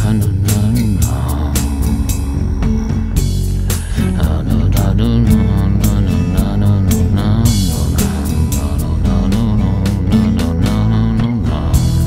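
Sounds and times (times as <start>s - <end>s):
bass guitar: 0.0s - 12.0s
steady drum beat: 0.0s - 12.0s.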